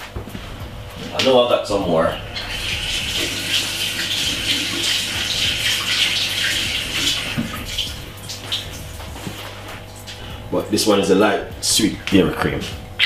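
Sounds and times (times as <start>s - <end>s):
water running from tap: 1.1s - 10.6s.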